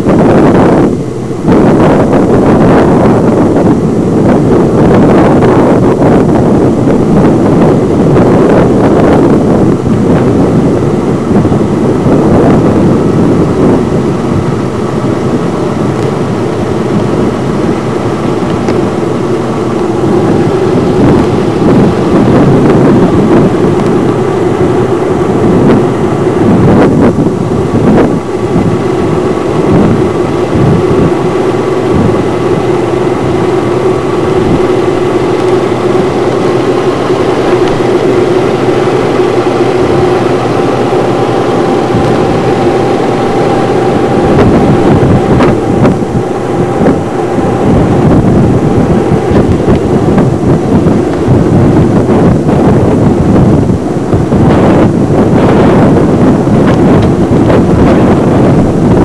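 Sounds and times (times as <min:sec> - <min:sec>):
vehicle engine and road noise: 0:00.0 - 0:59.0.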